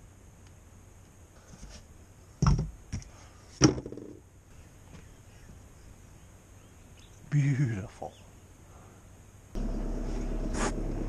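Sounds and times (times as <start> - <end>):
objects knocking when handled: 3.6 - 4.2.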